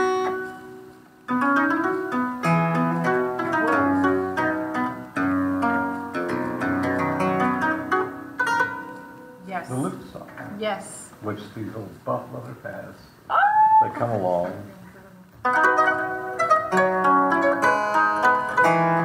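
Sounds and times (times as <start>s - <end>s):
harpsichord playing: 1.3s - 9.2s.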